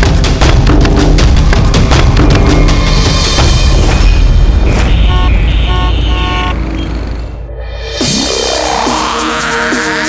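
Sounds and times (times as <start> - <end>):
city traffic rumble: 0.1 - 8.0
car horns honking: 4.7 - 7.3.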